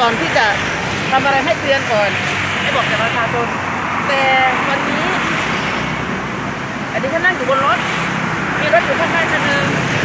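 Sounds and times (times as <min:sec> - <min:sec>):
woman speaking: 0:00.0 - 0:05.4, 0:08.6 - 0:09.8
street traffic noise: 0:00.0 - 0:10.0.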